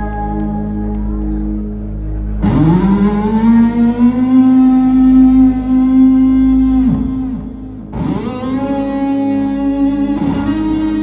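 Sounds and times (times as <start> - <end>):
electric guitar note swooping: 0.0 - 11.0
sustained backing chord: 0.0 - 11.0.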